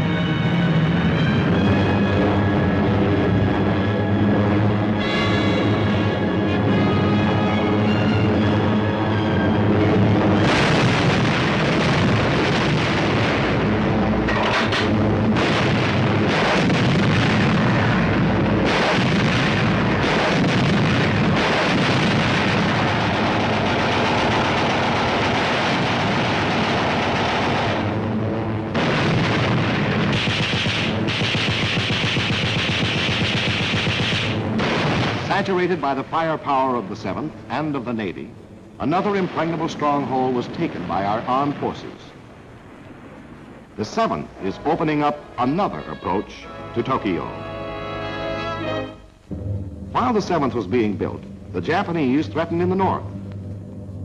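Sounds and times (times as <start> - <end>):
aircraft engines droning: 0.0 - 28.8, 35.2 - 54.0
explosion blasts: 9.8 - 37.7, 38.8 - 45.4
rapid gunfire: 10.4 - 13.8, 14.4 - 28.0, 28.7 - 35.4.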